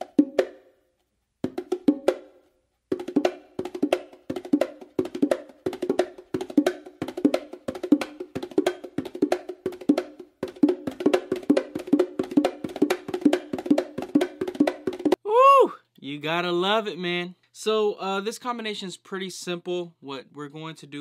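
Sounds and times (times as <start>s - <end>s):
bongos played with bare hands: 0.0s - 0.8s, 1.4s - 15.2s.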